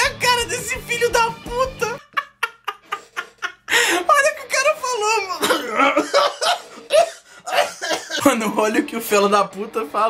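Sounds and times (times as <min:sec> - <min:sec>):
man laughing: 0:01.7 - 0:04.0, 0:05.4 - 0:08.2
man coughing: 0:05.4 - 0:08.2.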